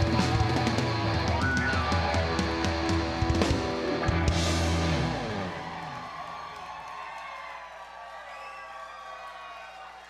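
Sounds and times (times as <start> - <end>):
drum kit: 0.0 - 5.8
electric guitar chords: 0.0 - 6.0.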